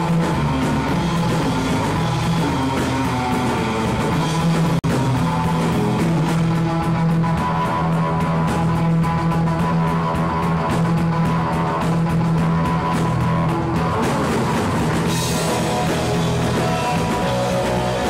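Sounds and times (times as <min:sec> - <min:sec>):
surf rock band playing: 0:00.0 - 0:18.0.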